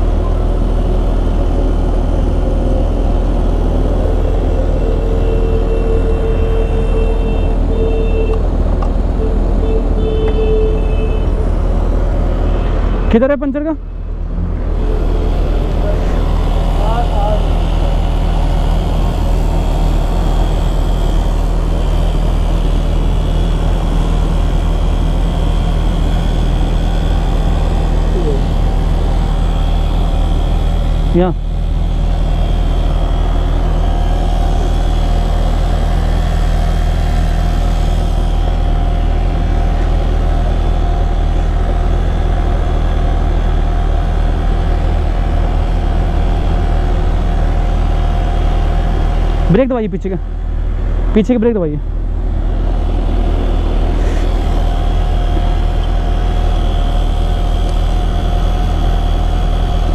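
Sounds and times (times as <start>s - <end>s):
small motor running: 14.7s - 50.5s, 52.3s - 59.9s.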